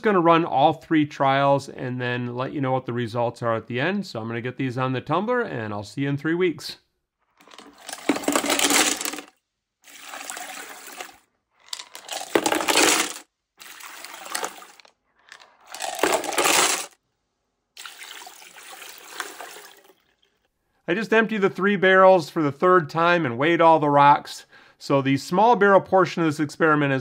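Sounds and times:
rocks clattering into colander: 7.4 - 9.3, 9.9 - 17.0
slurry splashing: 9.9 - 11.2, 12.1 - 14.8, 17.8 - 20.1.

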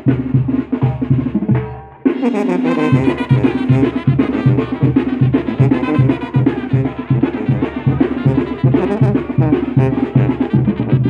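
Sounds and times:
brass band music with drums: 0.0 - 11.0.

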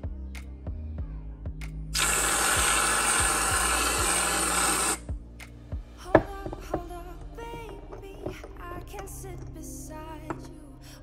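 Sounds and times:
background music: 0.0 - 11.0
aerosol can hissing: 2.0 - 5.0.

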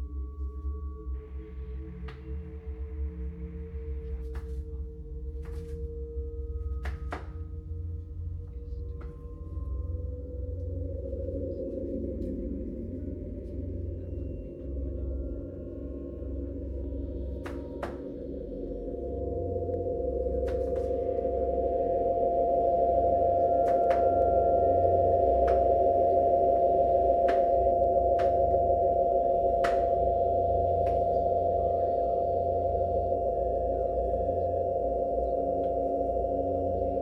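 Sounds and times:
electronic sine-wave drone: 0.0 - 37.0
steady high tone: 9.0 - 37.0.

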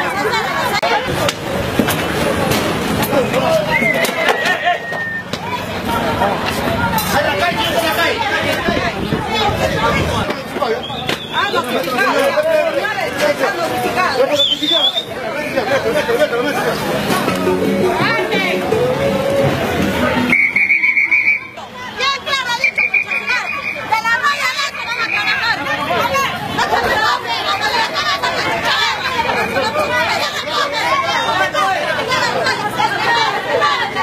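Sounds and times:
crowd babble: 0.0 - 34.0
people talking over one another: 0.0 - 34.0.

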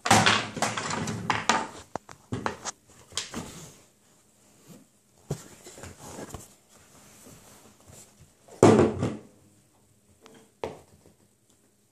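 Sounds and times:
plastic stool bumping on wood: 8.6 - 9.3.

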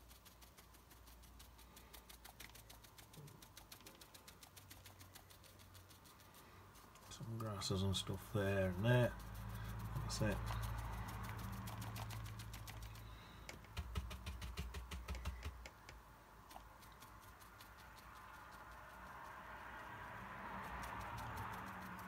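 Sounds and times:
faint low hum: 0.0 - 22.0
paintbrush tapping on paper: 8.7 - 19.4.

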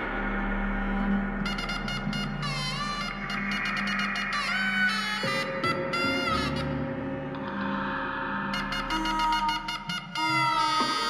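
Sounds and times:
low held tone: 0.0 - 10.4.

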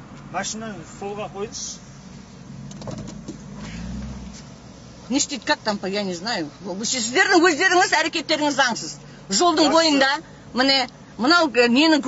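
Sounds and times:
road traffic rumble: 0.0 - 12.0
vehicle passing: 0.4 - 11.2.

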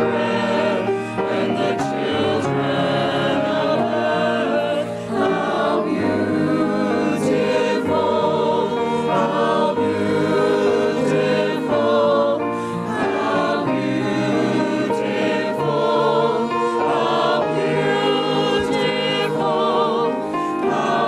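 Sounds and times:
choir singing sacred music: 0.0 - 21.0.

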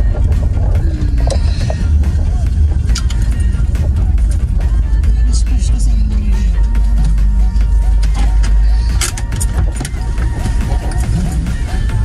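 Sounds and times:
car driving rumble: 0.0 - 12.0
music playing: 0.0 - 12.0.

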